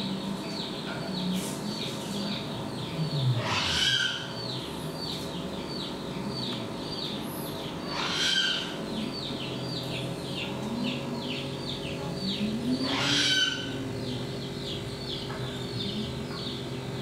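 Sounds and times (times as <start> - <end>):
louder animal calls: 3.3 - 4.5, 7.9 - 8.8, 12.8 - 13.8.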